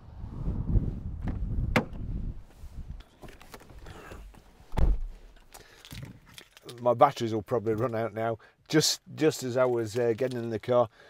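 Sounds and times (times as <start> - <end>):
car door latch click: 1.2 - 2.0
car door shutting thud: 1.2 - 2.1, 4.7 - 5.2.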